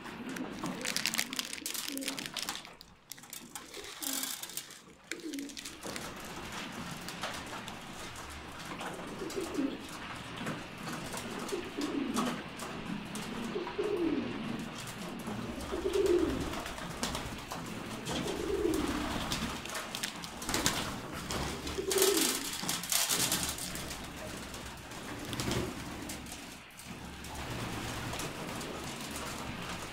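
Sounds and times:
beaks pecking on metal tray: 0.0s - 9.7s, 15.1s - 29.5s
rustling: 0.0s - 10.2s, 15.1s - 29.9s
pigeons cooing: 0.0s - 29.9s.

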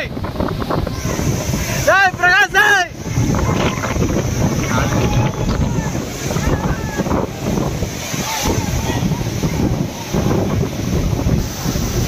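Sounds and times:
waterfall pouring into pool: 0.0s - 12.0s
wind buffeting microphone: 0.0s - 12.0s.

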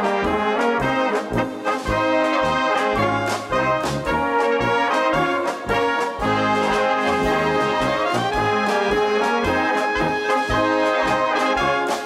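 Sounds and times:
trumpets playing melody: 0.0s - 12.0s
drum kit beat: 0.2s - 12.0s.

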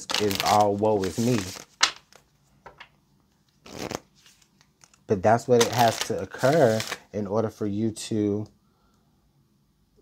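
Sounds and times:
cards rustling in hands: 0.0s - 2.4s, 3.6s - 7.0s.

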